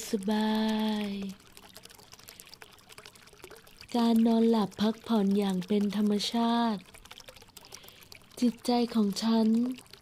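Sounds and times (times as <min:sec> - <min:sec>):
small water splashes: 0:00.0 - 0:10.0
water trickling: 0:00.0 - 0:10.0.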